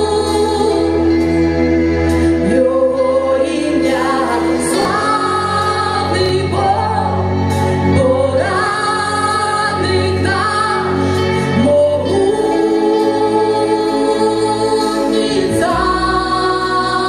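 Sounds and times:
electric bass: 0.0 - 17.0
woman singing into microphone: 0.0 - 17.0
worship music: 0.0 - 17.0.

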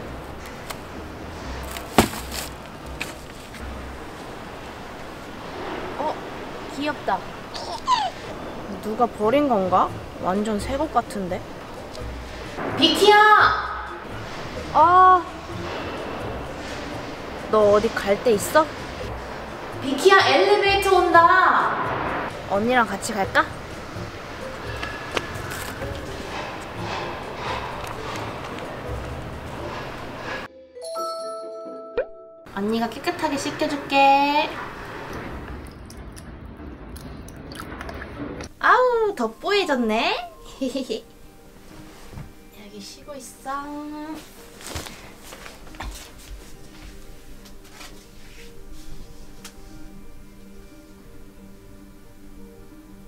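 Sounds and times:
background music: 0.0 - 6.0, 6.7 - 53.0
outdoor background noise: 0.0 - 30.5, 32.5 - 53.0
footsteps on pavement: 1.7 - 3.6, 44.7 - 48.0.

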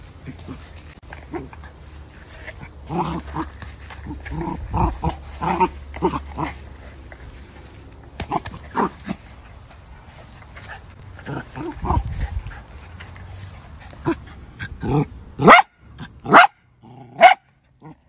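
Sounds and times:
dog barking: 15.4 - 16.6, 17.2 - 17.5.

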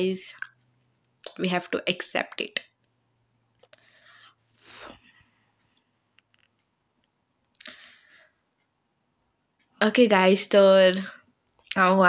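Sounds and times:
short breath: 3.7 - 5.3.

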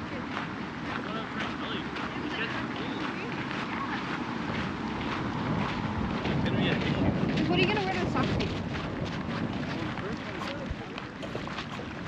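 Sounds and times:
people talking: 0.0 - 4.2, 6.4 - 8.6, 9.6 - 11.8
wind on microphone: 0.0 - 12.0.

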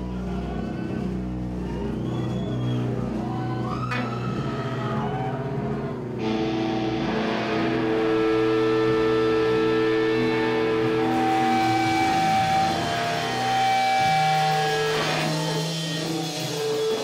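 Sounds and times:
bass droning: 0.0 - 17.0
distorted electric guitars: 0.0 - 17.0
drums: 0.0 - 17.0.

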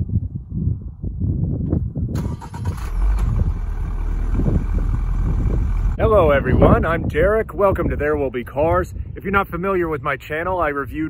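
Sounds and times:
car exhaust rumble: 2.2 - 9.1.

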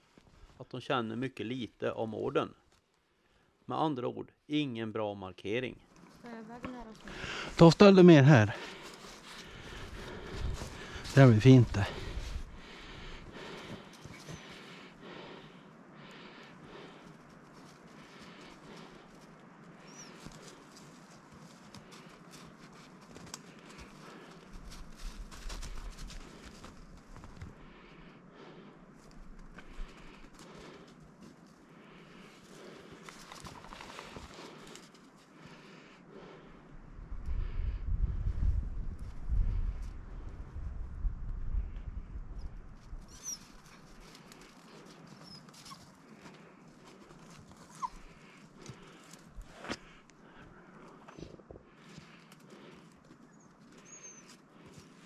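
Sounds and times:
rustles and scrapes in snow: 7.4 - 12.6, 20.0 - 27.4.

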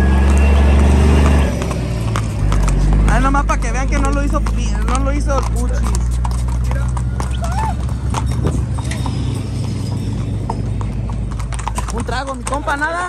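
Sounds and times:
horse hooves clip-clopping: 0.0 - 13.0.

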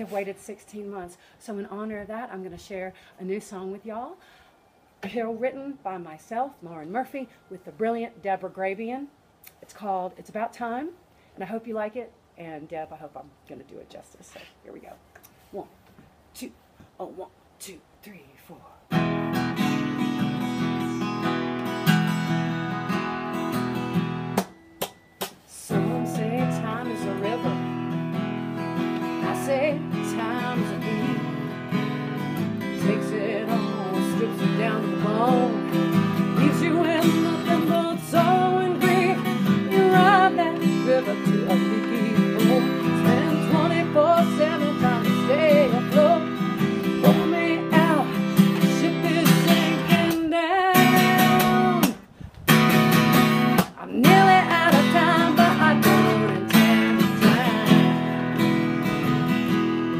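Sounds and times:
woman singing: 5.0 - 11.9, 25.5 - 52.1, 53.6 - 59.6
acoustic guitar strumming: 18.9 - 59.9.

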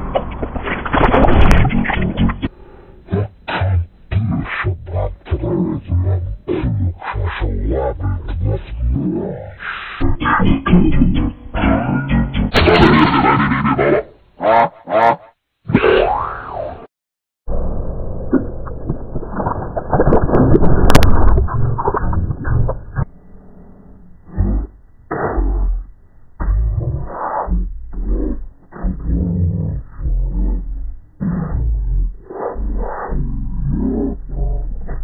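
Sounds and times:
deep distorted voice: 1.1 - 16.6, 20.2 - 23.1, 24.2 - 35.0
sliding pitch sound effect: 1.3 - 16.9
springy boing sounds: 10.0 - 16.3.

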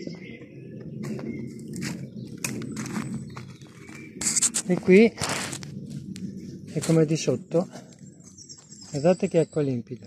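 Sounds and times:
footsteps on dry leaves: 0.0 - 7.2.

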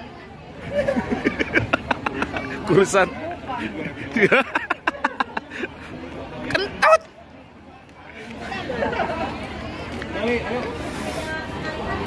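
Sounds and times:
indistinct chatter of people: 0.0 - 12.0.

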